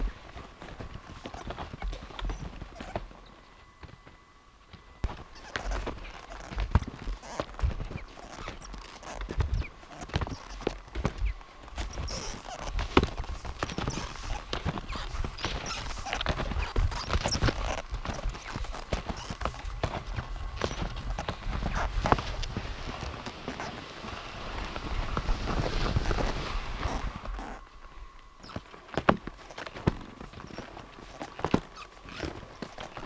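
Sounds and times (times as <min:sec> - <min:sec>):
skis crunching through snow: 0:05.2 - 0:27.6.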